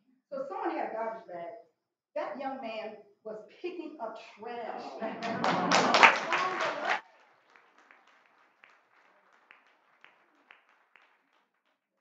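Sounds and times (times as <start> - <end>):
audience laughing: 4.7 - 7.0
audience applauding: 4.9 - 12.0.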